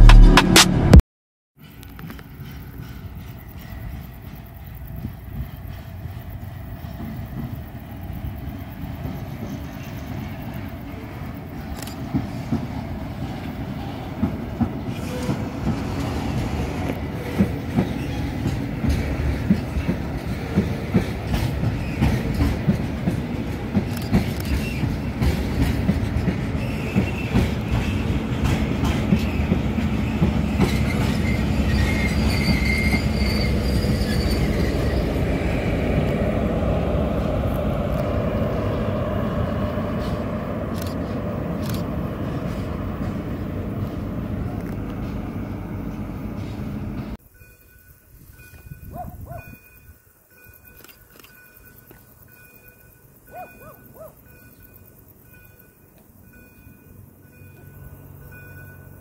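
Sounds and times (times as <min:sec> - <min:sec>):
train wheels clicking over rail joints: 0:01.6 - 0:35.3
wheel squeal: 0:29.2 - 0:35.2.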